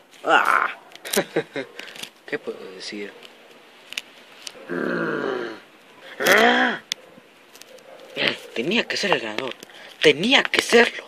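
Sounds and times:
man groaning: 0:00.2 - 0:00.8, 0:04.7 - 0:05.6, 0:06.2 - 0:06.8.

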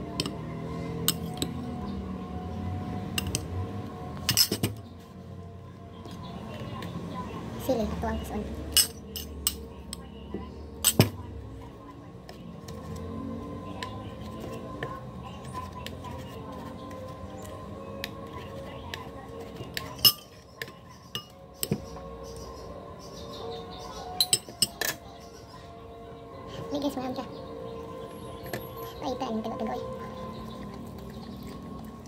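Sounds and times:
cutlery clinking on ceramic plate: 0:08.7 - 0:09.6, 0:19.8 - 0:21.8, 0:24.2 - 0:25.0.

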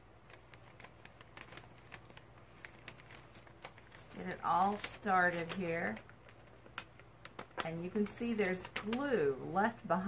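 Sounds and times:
paper backing peeling off: 0:00.2 - 0:09.2.

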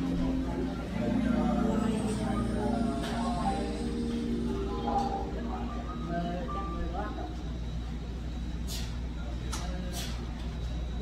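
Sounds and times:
background music: 0:00.0 - 0:07.5
murmur of voices: 0:00.0 - 0:11.0.

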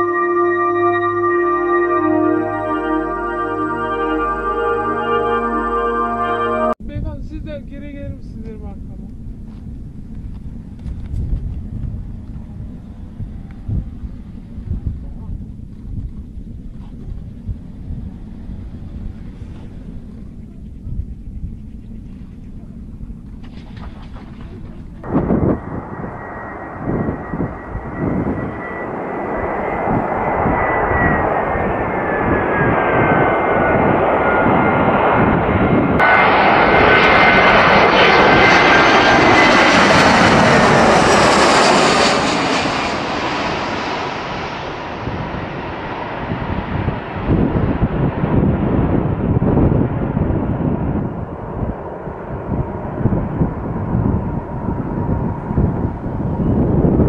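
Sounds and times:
jet engines whining: 0:00.0 - 0:06.8, 0:08.7 - 0:57.0.

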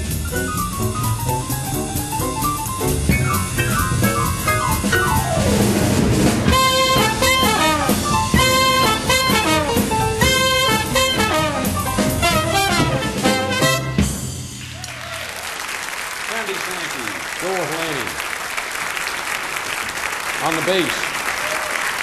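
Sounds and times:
piano: 0:00.0 - 0:15.2
drums: 0:00.0 - 0:18.1
horns playing held ensemble notes: 0:06.5 - 0:14.3.

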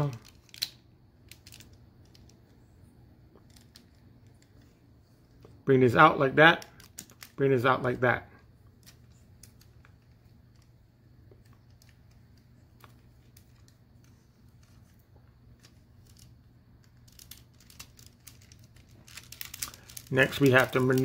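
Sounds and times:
plastic toy parts clicking: 0:00.0 - 0:02.4
low steady hum: 0:00.0 - 0:21.0.

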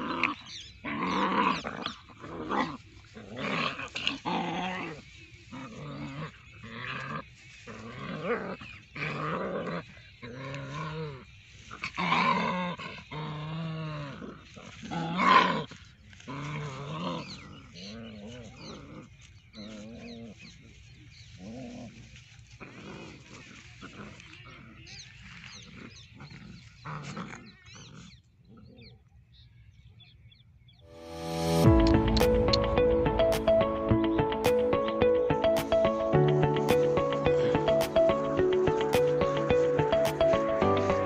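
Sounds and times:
puppies growling: 0:00.0 - 0:20.4.

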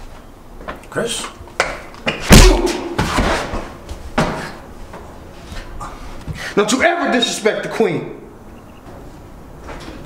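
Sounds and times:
body falling to floor: 0:02.2 - 0:04.5.

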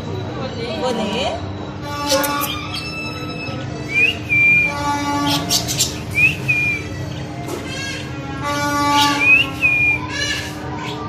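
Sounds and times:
budgerigars chirping: 0:02.0 - 0:03.7, 0:05.1 - 0:08.0, 0:08.8 - 0:11.0
rising bird whistle: 0:02.1 - 0:07.0, 0:09.0 - 0:10.2.

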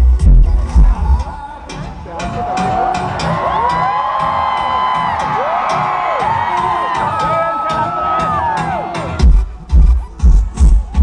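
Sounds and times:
electronic dance-pop music: 0:00.0 - 0:11.0
fans screaming and whooping: 0:02.2 - 0:11.0.

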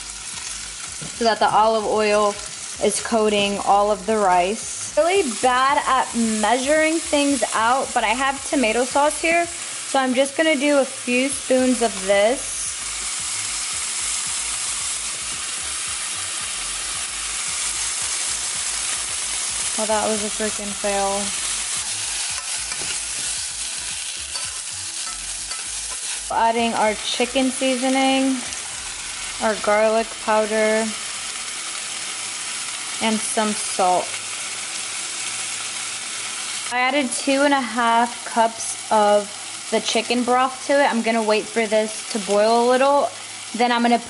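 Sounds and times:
rice sizzling in a pot: 0:00.0 - 0:44.0.

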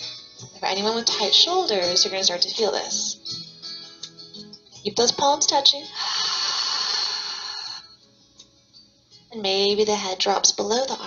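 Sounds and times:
soft background music: 0:00.0 - 0:11.0
breathy exhale: 0:06.0 - 0:08.0.

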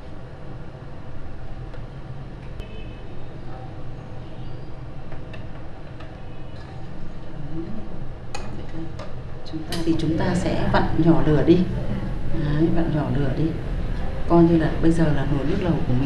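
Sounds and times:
broth boiling with low rumble: 0:00.0 - 0:16.0.

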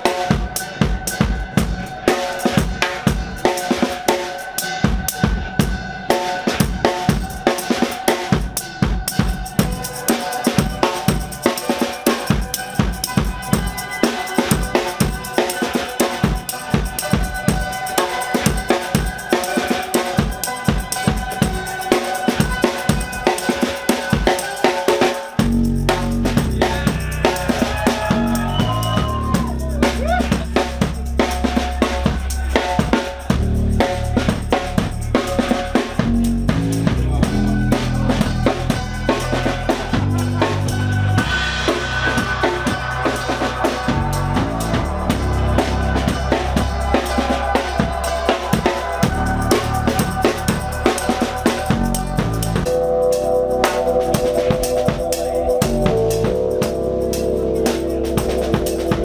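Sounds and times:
live drum kit beat: 0:00.0 - 0:59.0
deep bass: 0:25.4 - 0:59.0.

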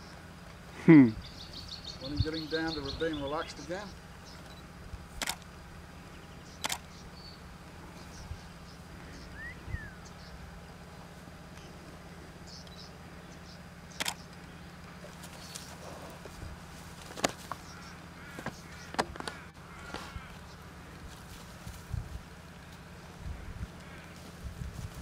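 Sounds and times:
steady low hum: 0:00.0 - 0:25.0
faint bird chirps: 0:06.0 - 0:10.9, 0:12.4 - 0:15.8.

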